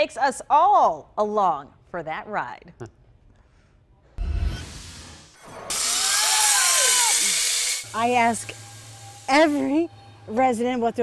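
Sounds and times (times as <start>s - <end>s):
zip-line trolley whirring on cable: 5.6s - 9.5s.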